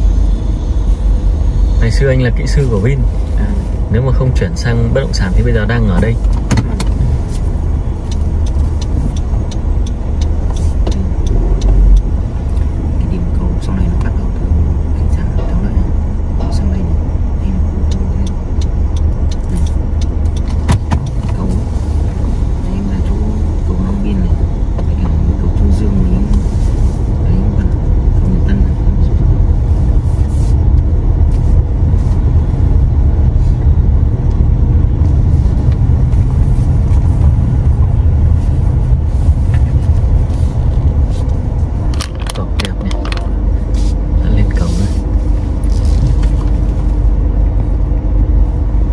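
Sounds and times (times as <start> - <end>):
car engine and road rumble: 0.0 - 48.9.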